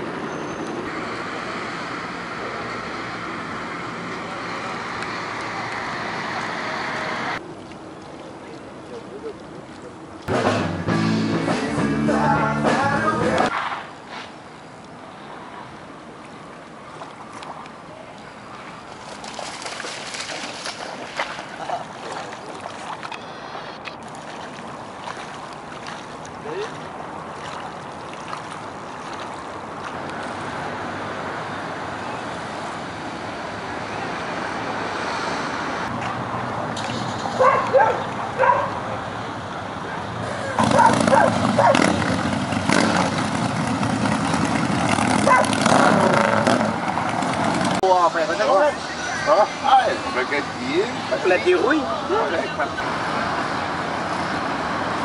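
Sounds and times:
wind: 0.0s - 55.0s
water lapping: 7.4s - 10.3s, 16.2s - 30.5s
voices: 8.0s - 10.2s, 26.4s - 26.9s, 47.8s - 54.4s
music: 10.3s - 13.5s.

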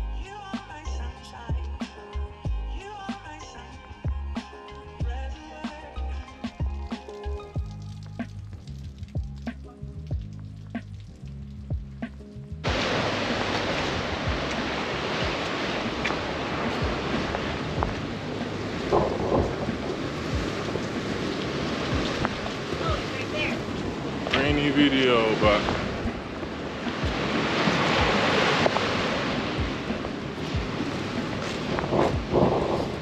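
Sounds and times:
background music with beat: 0.0s - 21.1s, 21.8s - 23.6s, 24.4s - 33.0s
rain: 0.0s - 33.0s
sea surf: 12.6s - 33.0s
wind on microphone: 12.6s - 33.0s.

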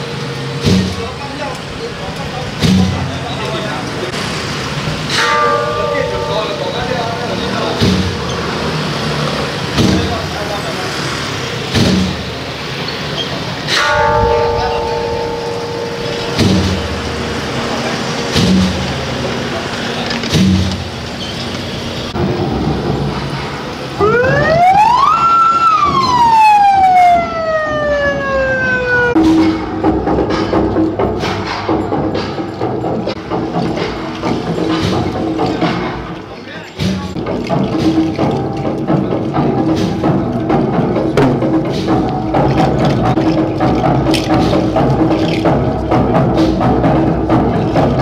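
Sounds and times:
street noise: 0.0s - 48.0s
drum beat: 7.5s - 8.3s, 9.8s - 10.3s, 11.7s - 12.4s, 13.8s - 19.2s, 24.0s - 36.2s, 36.8s - 48.0s
held horn-like tones: 13.7s - 22.1s
siren winding up and down: 24.0s - 29.2s.

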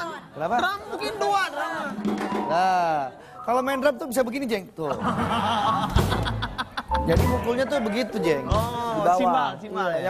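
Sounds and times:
audience laughter: 4.9s - 7.6s
deep drum hit: 6.0s - 7.7s.

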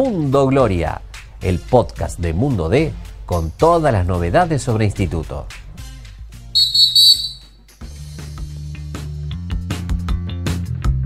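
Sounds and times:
referee's whistle blast: 6.6s - 7.4s.

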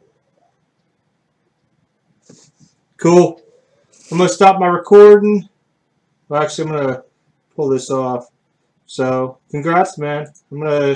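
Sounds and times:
faint intake of breath: 2.2s - 4.2s
person speaking: 2.3s - 5.6s.

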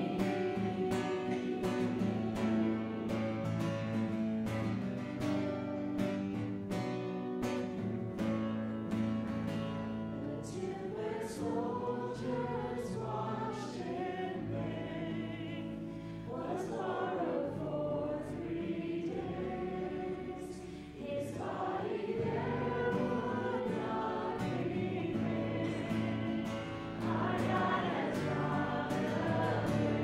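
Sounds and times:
voices singing a worship song: 0.0s - 4.3s, 10.2s - 30.0s
acoustic guitar: 0.0s - 30.0s.

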